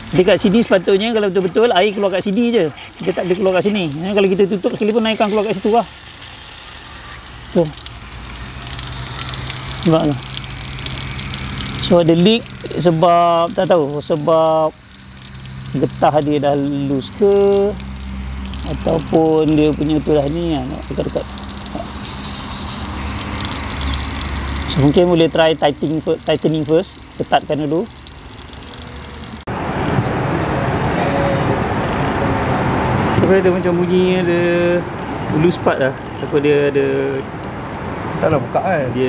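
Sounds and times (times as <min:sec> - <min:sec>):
water hissing and splashing: 0:00.0 - 0:29.9
low steady hum: 0:00.0 - 0:32.5.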